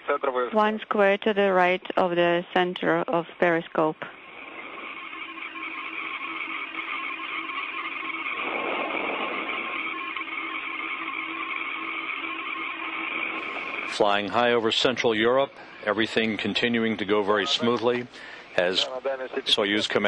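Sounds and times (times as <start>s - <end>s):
faint humming tones: 0.0s - 20.0s
radio static hiss: 0.0s - 20.0s.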